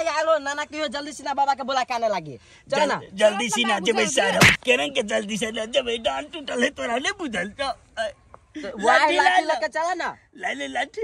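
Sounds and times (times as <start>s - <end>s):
people speaking excitedly: 0.0s - 11.0s.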